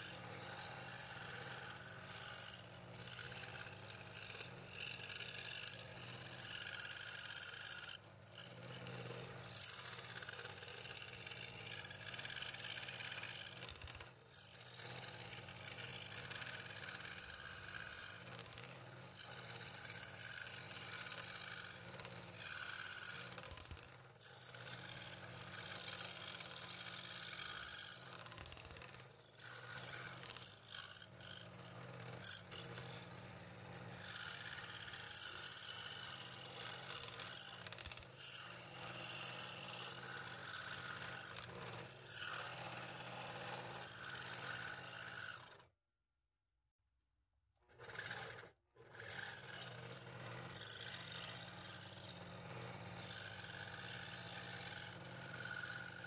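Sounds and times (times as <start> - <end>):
saw blade rasping through wood: 0.0 - 45.6, 47.7 - 56.0
scroll saw motor hum: 0.0 - 45.8, 47.6 - 56.0.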